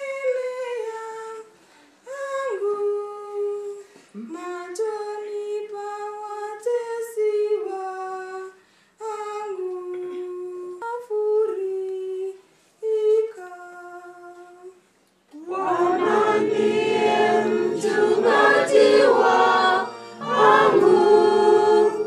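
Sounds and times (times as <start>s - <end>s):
woman singing: 0.0s - 16.3s
congregation singing a hymn: 15.4s - 22.0s.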